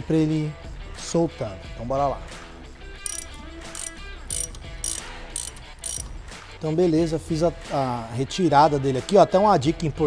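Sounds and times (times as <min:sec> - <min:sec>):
ratcheting wrench clicking: 0:03.1 - 0:06.2.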